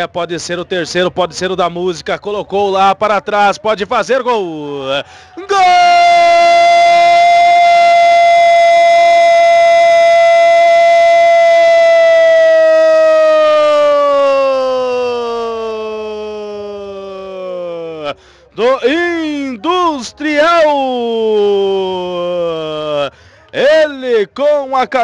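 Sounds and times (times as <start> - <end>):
man shouting long drawn-out goal: 4.7 - 25.0.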